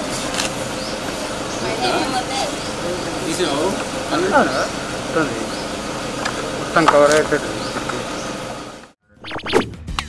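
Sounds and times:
indistinct voices: 0:01.0 - 0:09.6.

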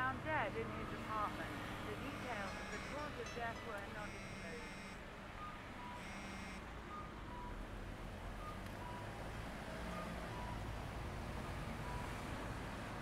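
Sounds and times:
phone message alert tone: 0:02.0 - 0:06.6
faint short beeps: 0:02.2 - 0:07.6.

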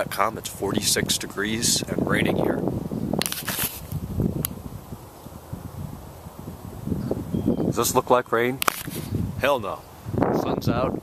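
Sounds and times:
low wind rumble: 0:00.0 - 0:11.0
sharp click: 0:03.2 - 0:03.8, 0:04.4 - 0:04.6, 0:08.6 - 0:09.0
brief rustle: 0:03.2 - 0:04.6, 0:08.6 - 0:09.2
camera handling noise: 0:03.2 - 0:04.6, 0:08.6 - 0:09.2.

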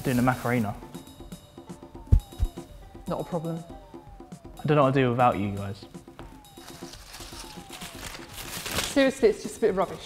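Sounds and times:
paper chains crinkling: 0:06.6 - 0:09.2.

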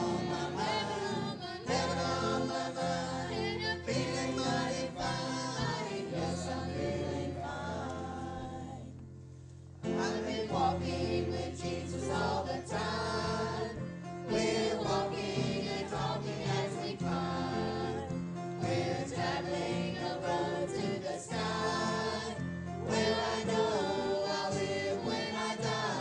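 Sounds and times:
voices singing a hymn: 0:00.0 - 0:09.0, 0:09.8 - 0:26.0.

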